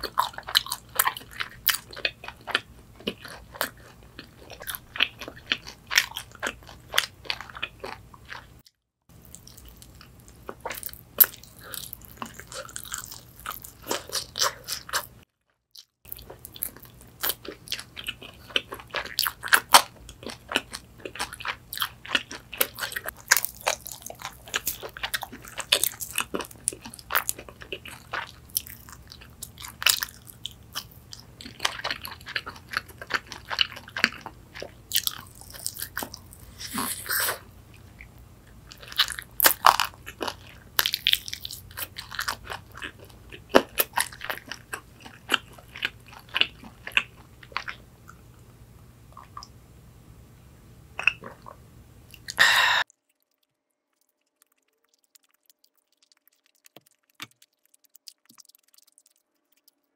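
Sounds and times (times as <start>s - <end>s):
crunching fried chicken: 0.0s - 15.2s, 15.8s - 47.8s, 52.9s - 59.9s
soft chewing: 0.0s - 15.2s, 15.8s - 49.6s, 51.0s - 59.9s.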